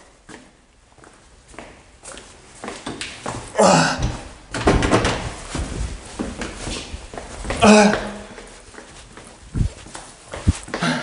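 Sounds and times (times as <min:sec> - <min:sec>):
door thump: 0:04.0 - 0:05.4
door clattering and rattling: 0:04.5 - 0:05.6.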